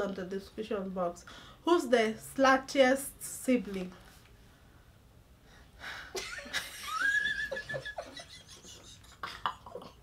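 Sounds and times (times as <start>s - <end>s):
women laughing: 6.2s - 10.0s.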